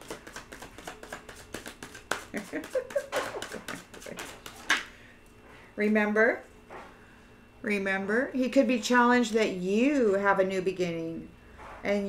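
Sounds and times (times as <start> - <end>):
cards being shuffled: 0.0 - 4.8.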